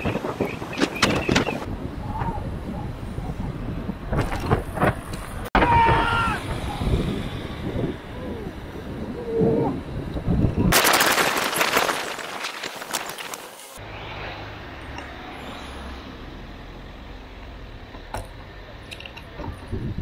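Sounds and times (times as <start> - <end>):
wind buffeting camera: 0.0 - 13.7, 19.1 - 20.0
road noise with low rumble: 0.0 - 20.0
crackling burst of rapid clicks: 10.7 - 13.8.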